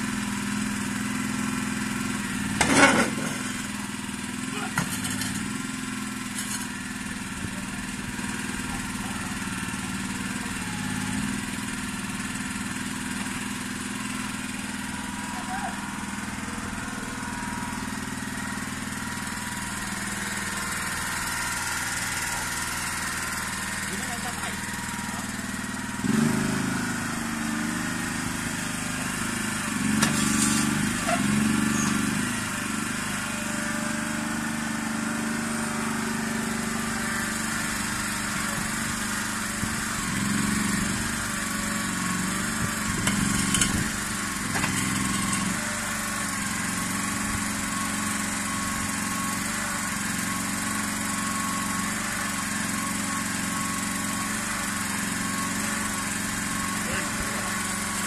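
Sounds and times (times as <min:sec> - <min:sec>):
mini excavator engine running: 0:00.0 - 0:58.0.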